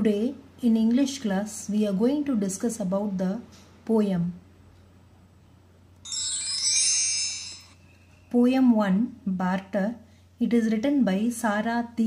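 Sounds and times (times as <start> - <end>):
high tinkling chime: 6.0 - 8.1.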